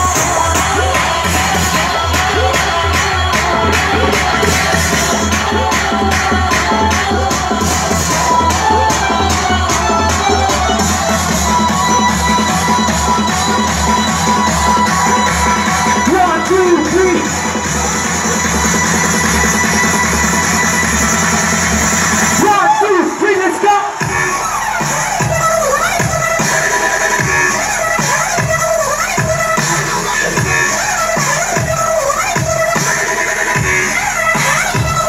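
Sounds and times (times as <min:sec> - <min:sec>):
sung vocal: 0:00.0 - 0:18.6
electronic dance music: 0:00.0 - 0:35.0.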